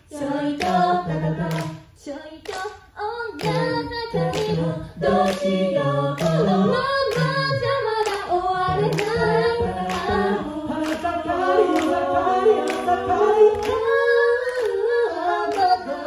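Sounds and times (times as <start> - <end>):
group singing in close harmony: 0.0 - 16.0
vocal percussion beat: 0.0 - 16.0.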